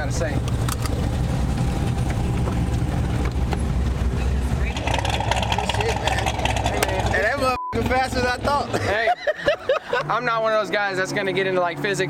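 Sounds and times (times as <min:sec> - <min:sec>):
road noise inside car: 0:00.0 - 0:10.1
car engine drone: 0:00.0 - 0:12.0.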